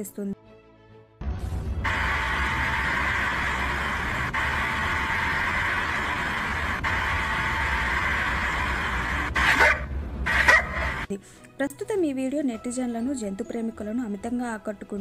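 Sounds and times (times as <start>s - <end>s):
low hum: 1.2s - 11.1s
dog calling: 9.4s - 10.8s.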